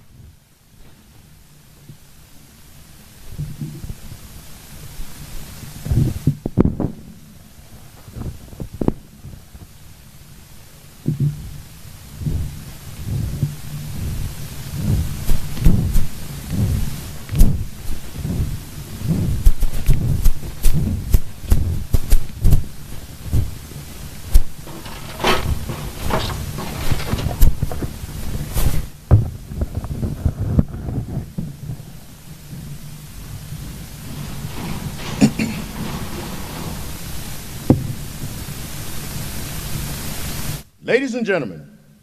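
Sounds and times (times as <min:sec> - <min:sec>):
rustling close to microphone: 0:03.0 - 0:40.6
low thuds: 0:11.0 - 0:40.1.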